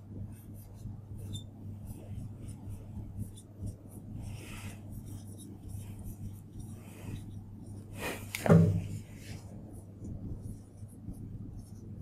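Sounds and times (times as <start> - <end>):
marker pen scratching on glass: 0.0 - 12.0
steady low hum: 0.0 - 12.0.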